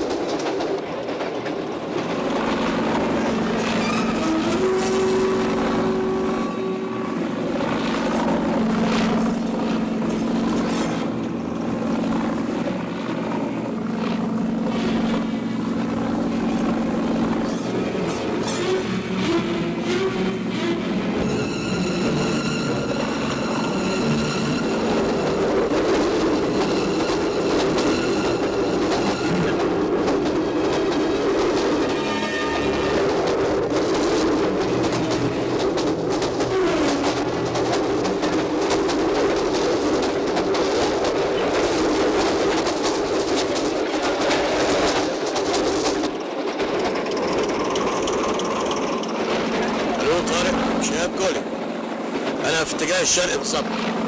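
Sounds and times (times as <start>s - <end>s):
train running on rails: 0.0s - 54.0s
train horn: 3.5s - 7.8s, 17.4s - 29.8s, 31.9s - 33.2s, 36.4s - 37.5s.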